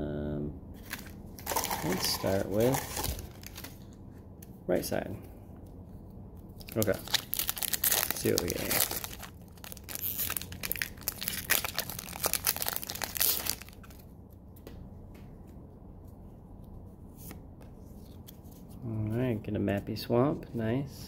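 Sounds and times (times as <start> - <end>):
foil wrapper tearing and crinkling: 0.8 - 3.8, 6.6 - 14.0.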